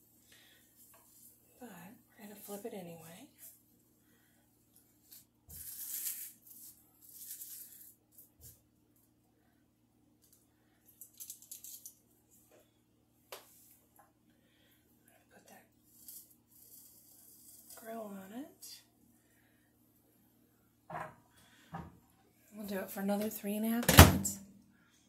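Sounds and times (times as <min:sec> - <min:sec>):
corn rustling in plastic grill: 0:05.0 - 0:08.4.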